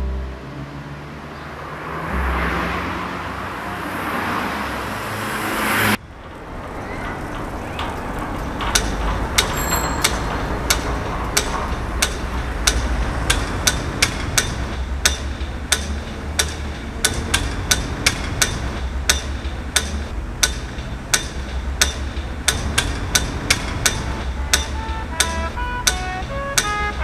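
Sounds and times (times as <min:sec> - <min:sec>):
steady low rumble: 0:06.0 - 0:27.0
sharp dry knocks: 0:07.6 - 0:27.0.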